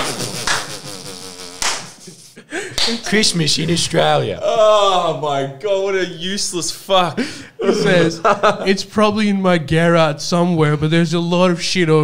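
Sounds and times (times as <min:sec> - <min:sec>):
man laughing wheezily: 0:00.0 - 0:02.8.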